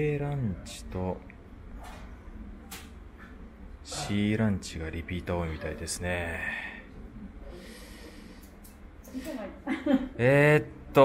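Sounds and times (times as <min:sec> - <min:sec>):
low background noise: 0:00.0 - 0:11.0
faint breathing: 0:06.3 - 0:09.6.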